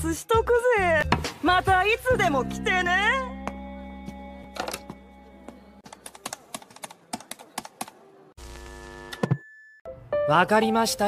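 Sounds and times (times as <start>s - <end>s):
keypad buttons clicking: 5.8s - 8.0s.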